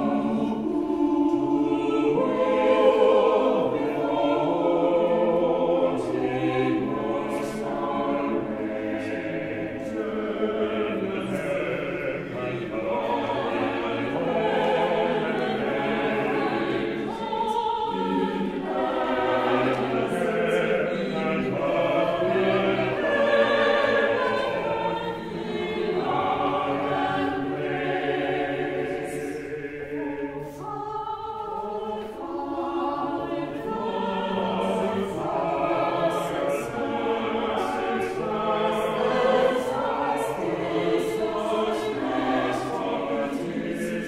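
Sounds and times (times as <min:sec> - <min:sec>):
church choir singing: 0:00.0 - 0:44.0.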